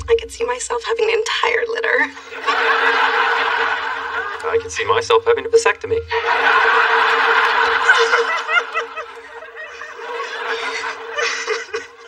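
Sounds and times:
studio audience laughing: 2.2 - 5.0, 6.1 - 12.0.

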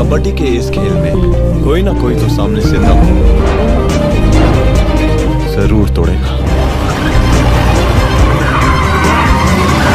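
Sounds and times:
loud background music: 0.0 - 9.9
car driving fast: 6.2 - 9.9
tyres skidding screech: 6.2 - 9.9.

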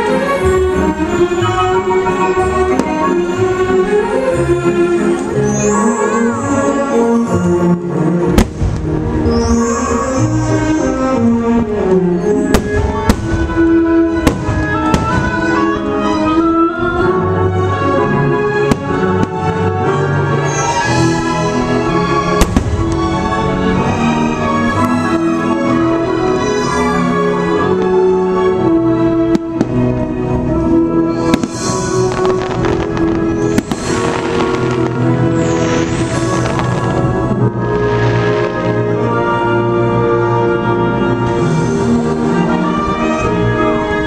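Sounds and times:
loud music: 0.0 - 44.0
fireworks bangs: 8.3 - 10.0, 12.2 - 15.8, 18.6 - 24.0, 31.1 - 39.2
firework shells bursting: 31.2 - 37.0
crackling stars hissing: 31.2 - 39.0.

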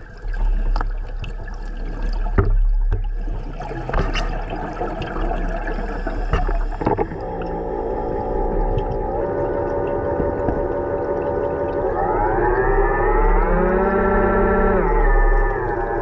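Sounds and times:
underwater motor whine: 6.8 - 16.0.

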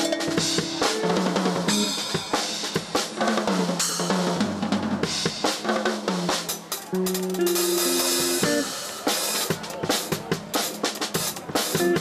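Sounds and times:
electric guitar melody: 0.0 - 2.3, 6.9 - 8.9
drum kit with cymbals: 0.0 - 12.0.

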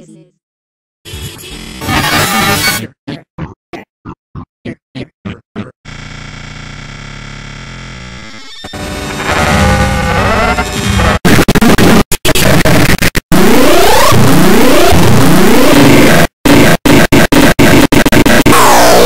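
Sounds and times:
distorted music remix: 1.1 - 3.2, 8.0 - 19.0.

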